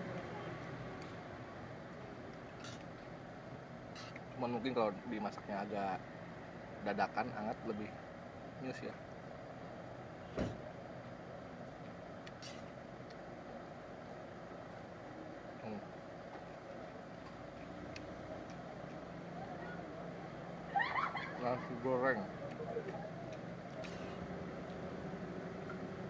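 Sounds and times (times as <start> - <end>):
street traffic hum: 0.0 - 26.0.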